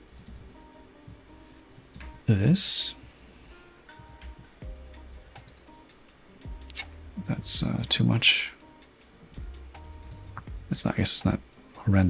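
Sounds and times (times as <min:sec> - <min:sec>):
computer keyboard clicks: 0:00.1 - 0:00.7.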